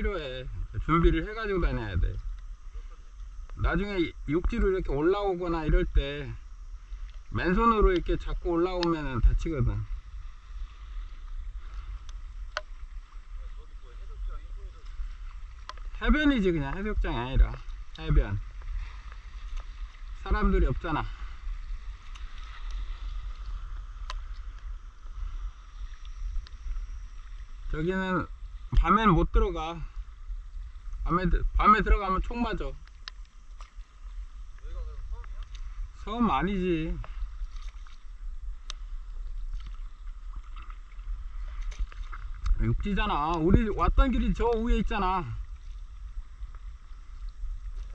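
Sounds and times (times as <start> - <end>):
wind rumble on microphone: 0.0 - 47.9
water splashing and lapping: 8.7 - 27.7, 36.7 - 47.9.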